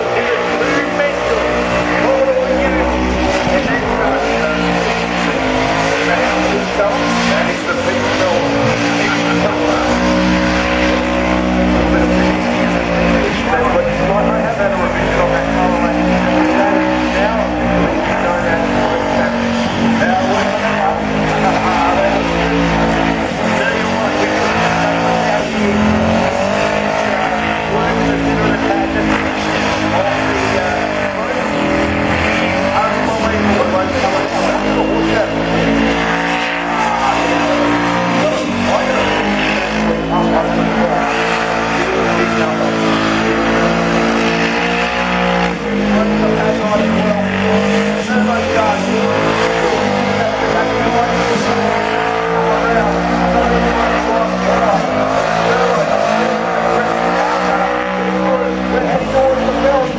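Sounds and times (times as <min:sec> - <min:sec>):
car engine at high revs: 0:00.0 - 0:59.9
tyres spinning and squealing: 0:00.0 - 0:59.9.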